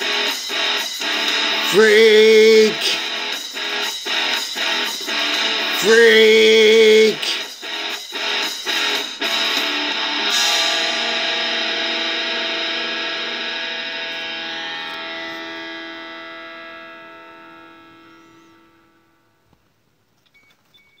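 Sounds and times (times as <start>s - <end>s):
distorted electric guitar chord ringing: 0.0s - 19.5s.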